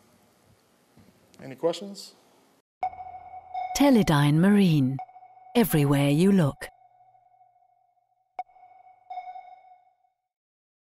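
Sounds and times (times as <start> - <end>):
lingering tone: 2.8 - 10.3
sonar pings: 2.8 - 10.3.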